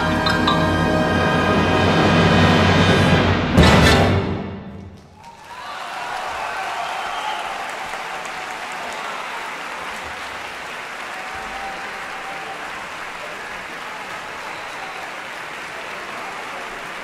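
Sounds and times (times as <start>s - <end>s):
audience applauding: 4.8s - 17.0s.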